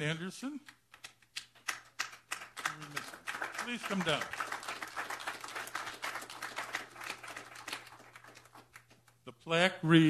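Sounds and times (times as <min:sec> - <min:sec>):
small group clapping: 0:00.6 - 0:09.3.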